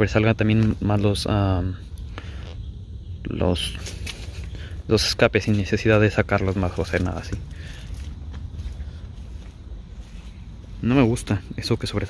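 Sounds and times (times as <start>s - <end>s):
footsteps on grass and dirt: 0.0s - 2.6s, 3.5s - 12.0s
wind rumble on microphone: 0.0s - 12.0s.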